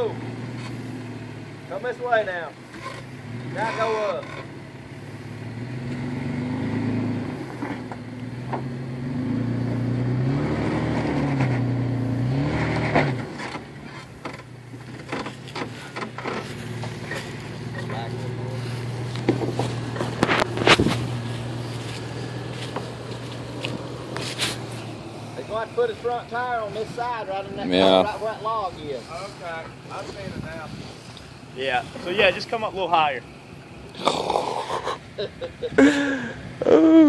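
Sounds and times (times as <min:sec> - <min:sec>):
engine revving and idling: 0:00.0 - 0:37.0.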